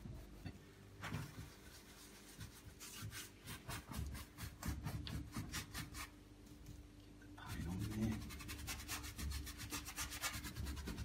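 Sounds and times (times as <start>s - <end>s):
paintbrush scrubbing on canvas: 0.0s - 6.1s, 7.5s - 11.0s.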